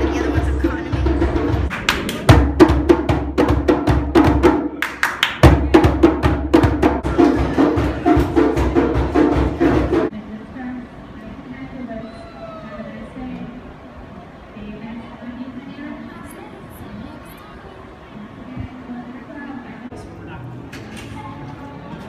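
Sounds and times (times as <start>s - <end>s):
steady pitched backing: 0.0s - 1.7s
hand drums playing fast: 0.0s - 4.7s, 5.4s - 10.1s
sharp drum slaps: 0.0s - 10.1s.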